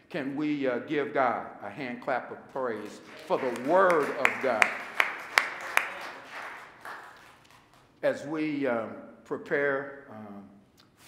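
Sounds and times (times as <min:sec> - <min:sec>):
hands clapping: 0:02.7 - 0:08.0.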